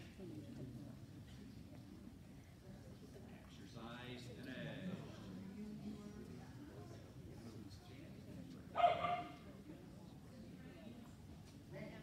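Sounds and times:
dog barking: 8.8s - 9.4s.

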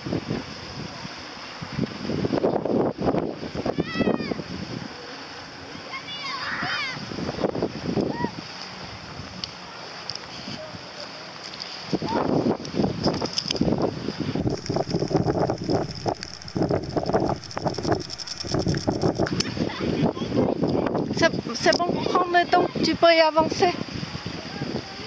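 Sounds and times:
distant children's voices: 3.6s - 4.4s, 5.0s - 8.5s
wind buffeting microphone: 11.9s - 25.0s.

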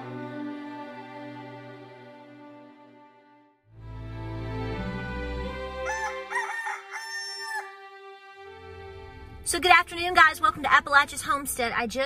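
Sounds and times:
soft background music: 0.0s - 12.0s
rooster crowing: 5.8s - 7.8s.

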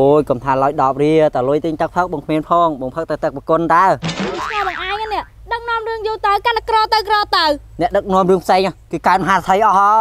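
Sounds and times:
people talking: 0.0s - 10.0s
noisy gliding pitch sound: 4.0s - 5.3s.

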